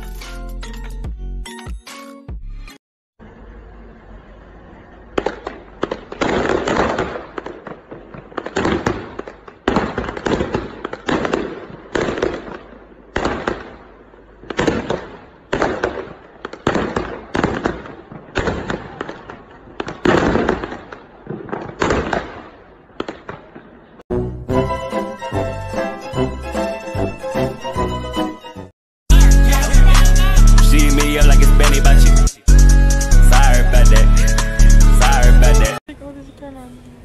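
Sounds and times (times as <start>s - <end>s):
fireworks crackling bursts: 5.1s - 24.0s.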